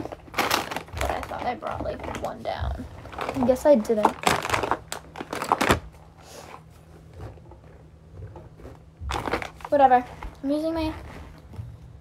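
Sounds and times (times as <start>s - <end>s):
rustling and knocking of rummaging: 0.0s - 12.0s.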